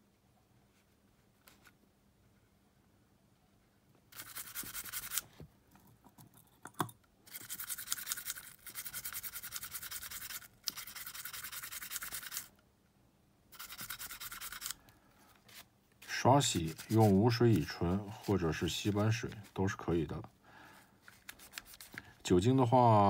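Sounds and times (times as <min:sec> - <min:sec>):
small brush scrubbing: 0:04.1 - 0:05.3, 0:07.3 - 0:12.5, 0:13.5 - 0:14.8, 0:15.5 - 0:20.2, 0:21.0 - 0:22.6.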